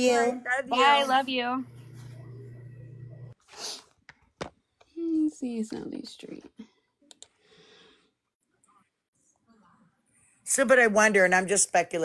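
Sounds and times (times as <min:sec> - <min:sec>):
faint low hum: 0:01.4 - 0:03.4.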